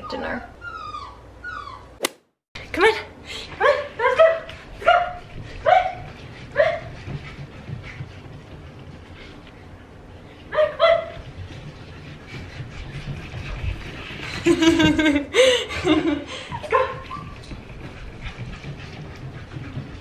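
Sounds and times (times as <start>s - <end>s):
puppy yipping barks: 10.5s - 11.2s.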